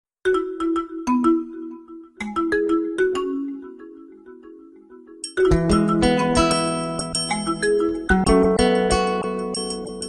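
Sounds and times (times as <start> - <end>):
melody of struck ringing notes: 5.1 - 10.0.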